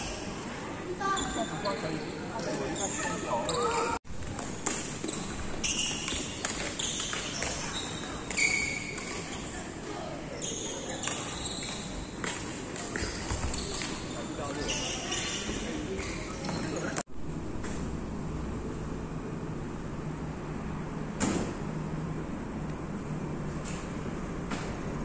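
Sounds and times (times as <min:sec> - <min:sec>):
shoes squeaking on wooden floor: 0:04.6 - 0:09.6, 0:10.3 - 0:17.0.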